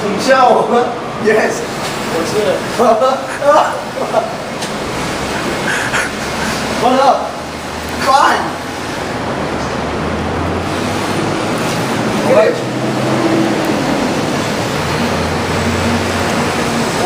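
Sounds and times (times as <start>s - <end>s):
road traffic rumble: 0.0s - 17.0s.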